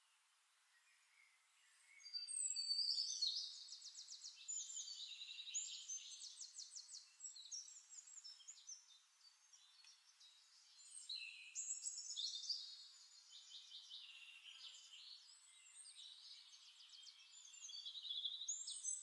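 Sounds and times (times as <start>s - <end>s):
songbirds trilling and chirping: 0.0s - 19.0s.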